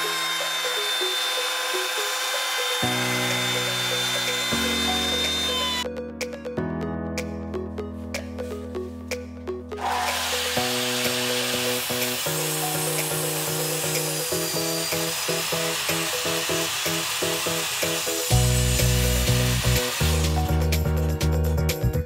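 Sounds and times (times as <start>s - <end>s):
miter saw cutting wood: 0.0s - 5.8s, 9.8s - 20.8s
background music: 0.0s - 22.0s.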